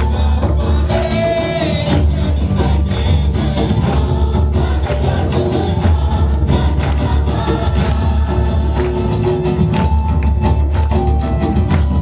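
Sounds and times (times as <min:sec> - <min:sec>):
group singing praise song: 0:00.0 - 0:09.9
amplified band accompaniment: 0:00.0 - 0:12.0.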